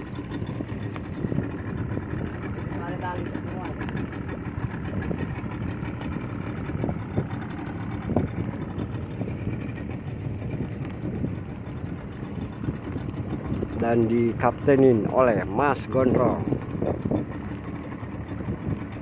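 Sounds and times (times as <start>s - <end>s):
outboard motor droning: 0.0s - 19.0s.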